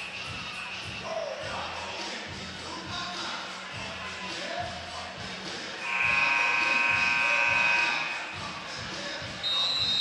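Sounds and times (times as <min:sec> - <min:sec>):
scoreboard buzzer: 0:05.8 - 0:08.4.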